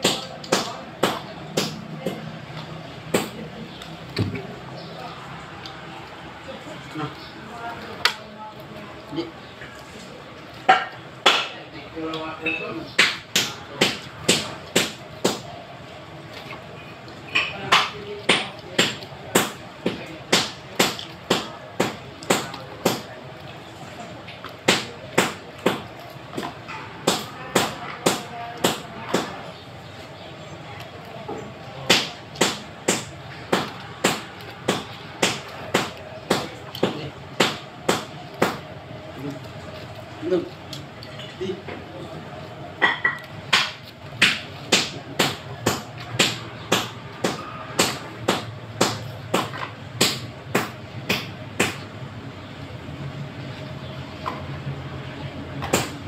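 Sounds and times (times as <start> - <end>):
hammer blows ringing: 42.8 - 51.8.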